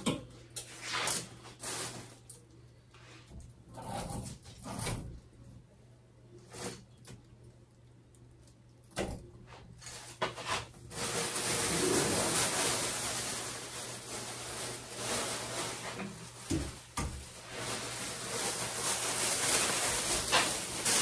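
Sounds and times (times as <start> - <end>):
plastic bag rustling: 0.8 - 2.5, 9.7 - 21.0.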